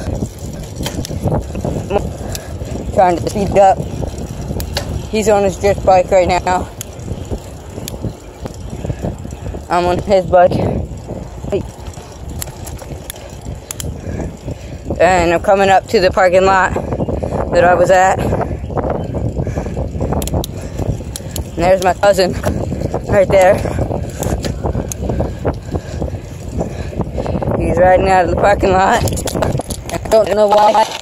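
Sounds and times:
bicycle tyres rolling on asphalt: 0.0 - 31.0
bike clicking: 0.0 - 31.0
wind noise on microphone: 0.0 - 31.0.

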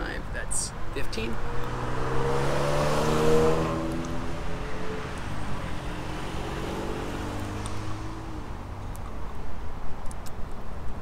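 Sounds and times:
traffic low rumble: 0.0 - 11.0
vehicle engine passing: 1.1 - 8.7.

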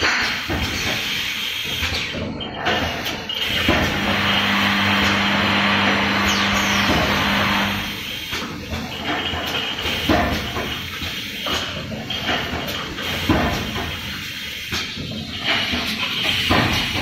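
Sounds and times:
low machine hum: 3.8 - 8.0.

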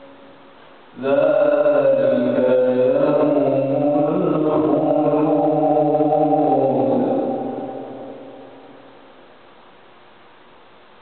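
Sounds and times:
man chanting melodically: 1.0 - 8.8.

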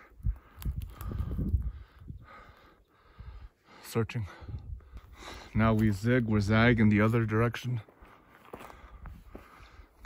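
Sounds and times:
soft hissing breaths: 0.0 - 5.6
footsteps through scrub: 6.9 - 9.6.

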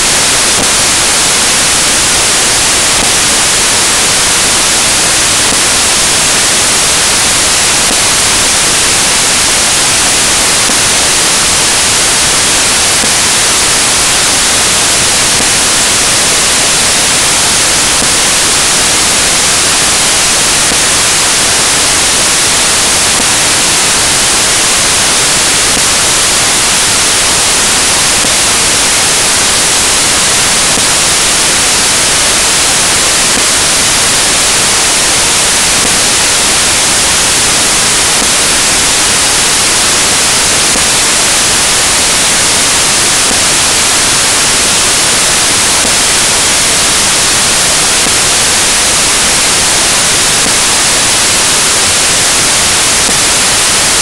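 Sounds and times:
loud steady hiss: 0.0 - 54.0.

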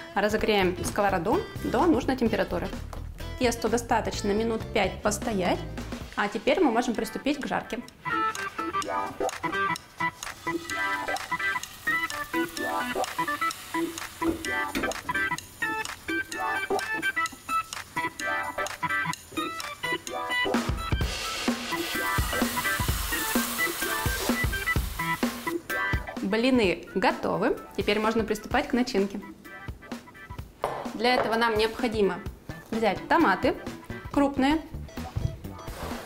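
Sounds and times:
background music with busy melody: 6.7 - 26.9, 27.5 - 36.0
bright hiss: 21.1 - 25.6.

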